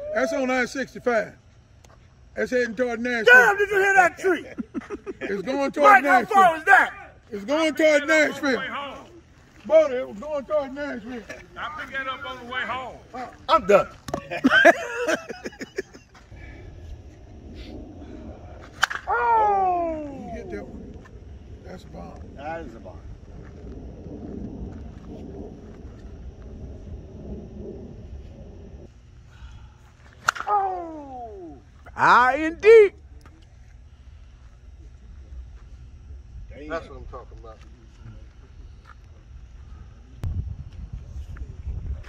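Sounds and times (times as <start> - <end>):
steady low rumble: 0.0 - 42.0
men laughing: 3.3 - 6.9, 14.1 - 16.4
softball bat hitting ball: 18.7 - 19.2, 30.2 - 30.8.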